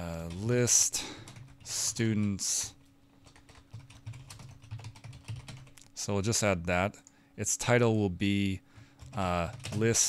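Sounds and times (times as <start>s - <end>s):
faint steady hum: 0.0s - 10.0s
keyboard typing: 3.2s - 5.8s, 8.8s - 10.0s.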